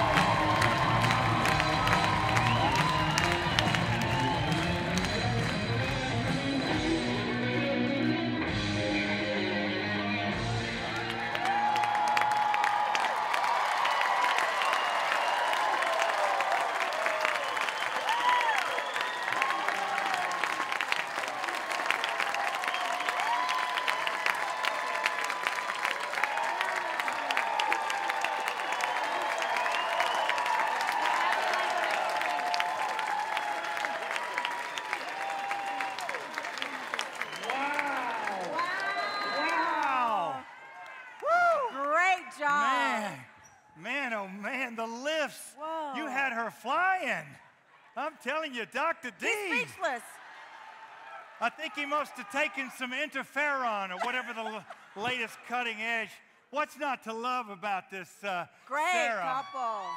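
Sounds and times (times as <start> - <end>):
audience cheering and whoops: 0.0 - 7.1, 10.0 - 43.3, 49.3 - 53.0, 58.8 - 59.9
audience applause: 0.0 - 7.5, 10.4 - 43.3, 49.2 - 55.8
dance music: 0.0 - 11.3, 49.3 - 50.0.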